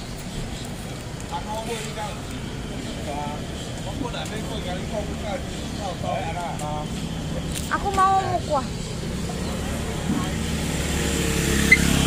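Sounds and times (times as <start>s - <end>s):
motor scooter engine passing: 4.4s - 12.0s.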